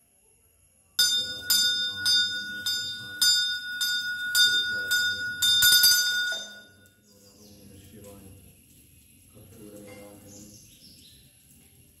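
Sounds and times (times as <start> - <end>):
brass hand bell ringing: 1.0 - 6.9.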